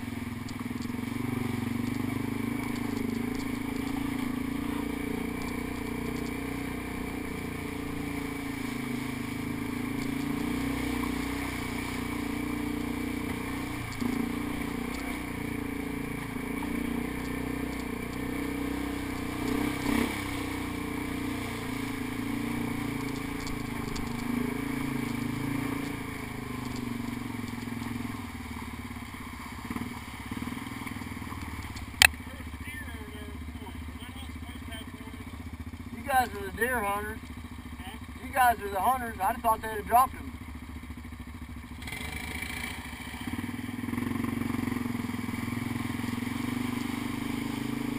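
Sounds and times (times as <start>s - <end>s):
quad bike engine running: 0.0s - 47.9s.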